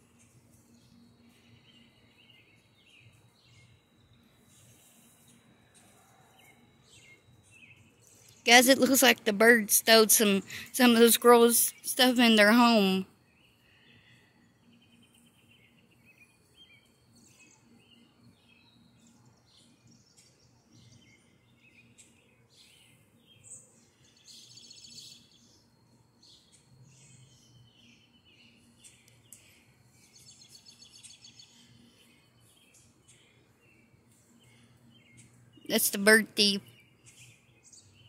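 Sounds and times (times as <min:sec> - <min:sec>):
small birds chirping: 0:00.0 - 0:38.0.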